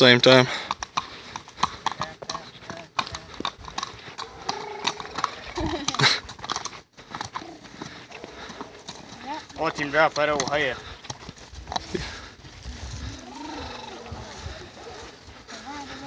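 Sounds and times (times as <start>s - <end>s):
horse hooves clopping on asphalt: 0.0s - 16.0s.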